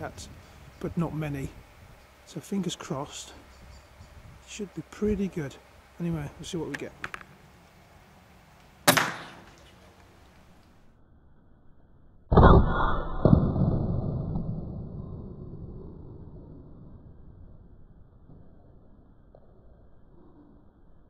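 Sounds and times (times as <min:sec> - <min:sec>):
air rifle crack: 0:08.6 - 0:10.8
dull hit: 0:08.9 - 0:09.5.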